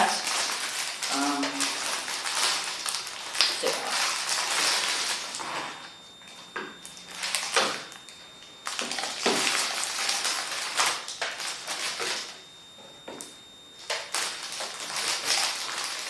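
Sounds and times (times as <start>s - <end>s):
plastic packaging crinkling: 0.0s - 12.5s, 13.2s - 16.0s.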